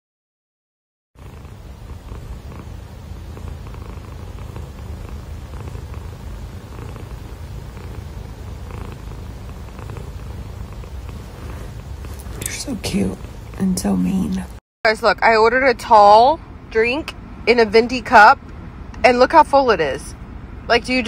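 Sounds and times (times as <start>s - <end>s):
cat purring: 1.2s - 14.6s.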